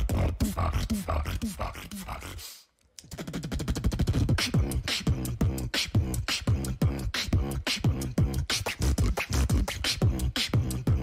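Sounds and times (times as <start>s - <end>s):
beatboxing: 0.0s - 11.0s.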